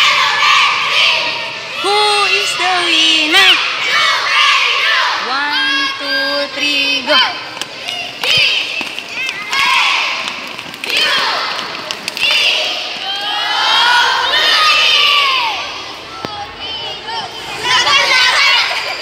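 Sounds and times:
children shouting and cheering: 0.0 - 19.0.

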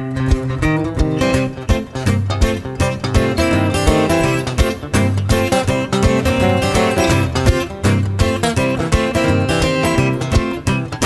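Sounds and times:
acoustic guitars playing folk: 0.0 - 11.0.

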